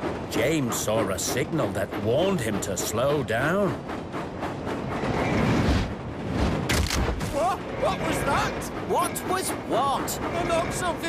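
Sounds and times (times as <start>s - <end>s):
steam engine rumbling: 0.0s - 6.7s, 7.3s - 11.0s.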